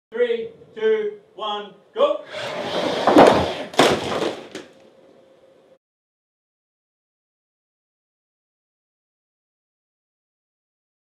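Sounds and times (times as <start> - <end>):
crash: 2.6 - 4.6.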